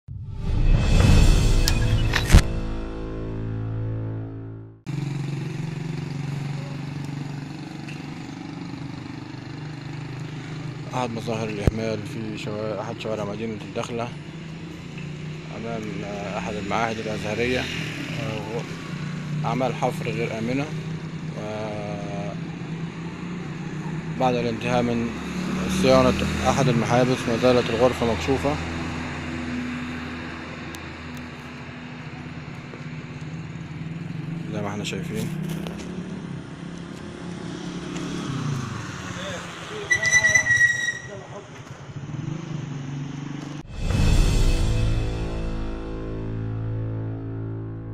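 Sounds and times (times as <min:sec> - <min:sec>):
street noise: 0:00.1 - 0:47.9
engine humming: 0:00.8 - 0:43.7.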